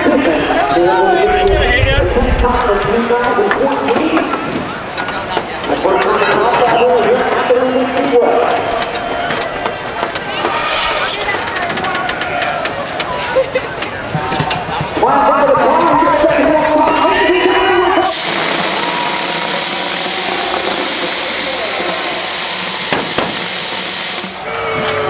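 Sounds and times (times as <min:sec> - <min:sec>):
people talking over one another: 0:00.0 - 0:22.4
brief hiss: 0:10.4 - 0:11.3.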